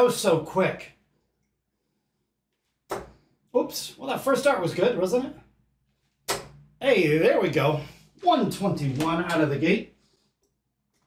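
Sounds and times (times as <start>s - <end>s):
dart striking dartboard: 2.9s - 3.2s, 6.2s - 6.6s.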